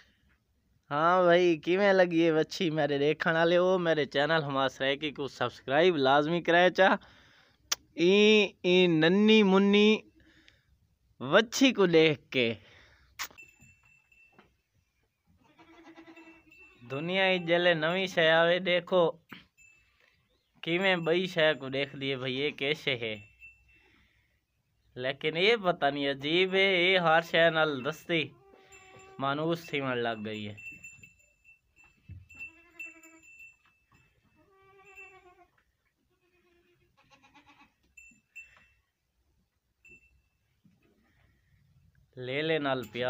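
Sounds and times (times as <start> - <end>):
farm animal bleat: 15.3 - 18.2, 28.2 - 29.4, 32.4 - 33.3, 34.3 - 37.8.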